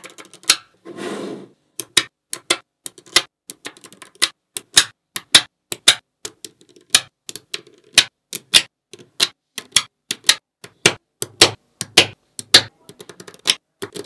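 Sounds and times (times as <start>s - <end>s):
magnet balls clicking: 1.8s - 14.0s.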